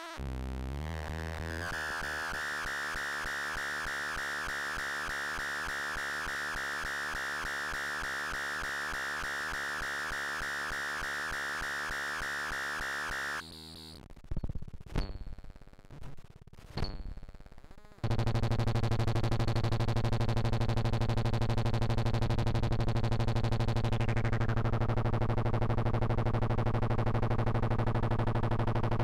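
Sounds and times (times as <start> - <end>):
pulsing synthesizer buzz: 0.2 - 14.0, 18.0 - 29.0.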